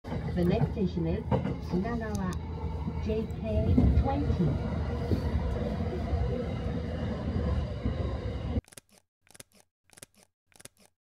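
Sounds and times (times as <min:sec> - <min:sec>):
train rumbling: 0:00.0 - 0:08.6.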